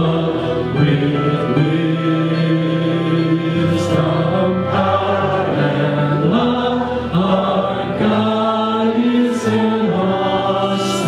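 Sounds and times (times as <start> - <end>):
guitar: 0.0 - 11.0
violin: 0.0 - 11.0
voices singing held notes: 0.0 - 11.0.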